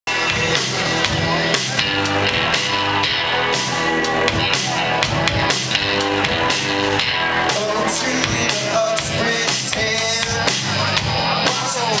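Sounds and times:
live rock band playing: 0.1 - 12.0.

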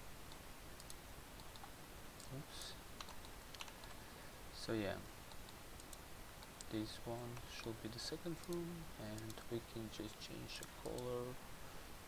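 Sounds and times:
computer mouse clicks: 0.3 - 2.4, 3.0 - 4.0, 5.3 - 7.7, 8.4 - 9.5, 10.5 - 11.2
keyboard clicks: 0.3 - 2.4, 3.0 - 4.0, 8.4 - 9.5, 10.5 - 11.2.

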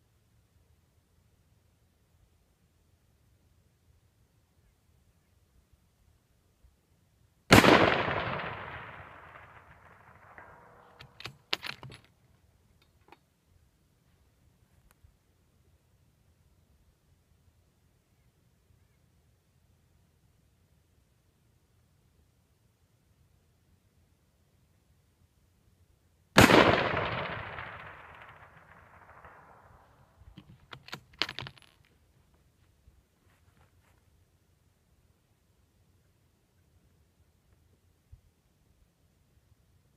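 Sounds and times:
rifle shot with echo: 7.5 - 11.7, 26.4 - 30.1
rifle bolt clicks and clacks: 10.8 - 12.1, 30.4 - 31.8.

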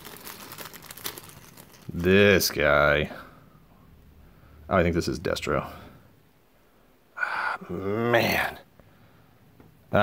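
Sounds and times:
plastic bag crinkling: 0.0 - 2.8.

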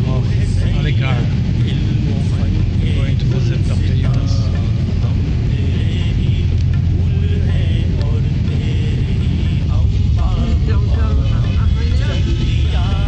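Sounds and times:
car engine and tyres rumbling: 0.0 - 13.0.

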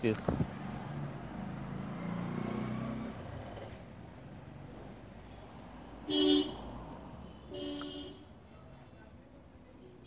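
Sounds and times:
passing vehicle engine: 0.1 - 5.0.

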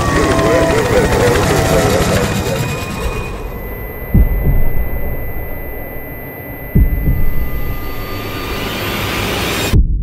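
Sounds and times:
low rumble: 2.9 - 10.0
heavy thump: 4.1 - 5.4, 6.8 - 7.8.

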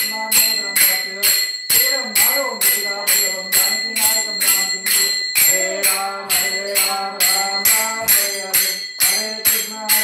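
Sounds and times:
hand bell ringing: 0.0 - 10.0.

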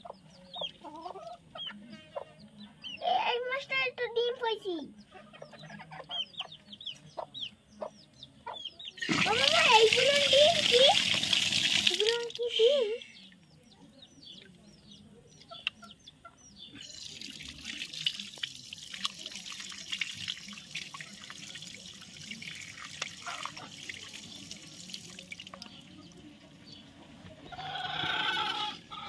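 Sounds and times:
small birds chirping: 0.0 - 29.0
water splashing on concrete: 9.0 - 12.7, 16.8 - 25.9
water running from tap: 9.0 - 12.8, 16.8 - 25.7.

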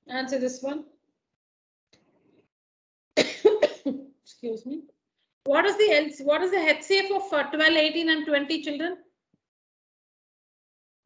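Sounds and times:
woman coughing: 3.2 - 4.1.

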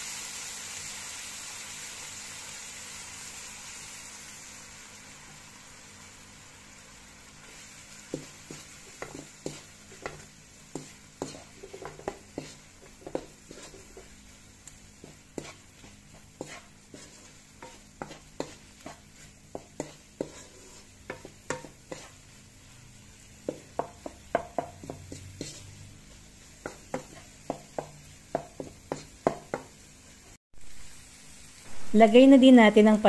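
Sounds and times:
meat sizzling: 0.0 - 33.0
wooden spatula scraping pan: 8.1 - 14.2, 15.0 - 22.3, 23.4 - 29.7.

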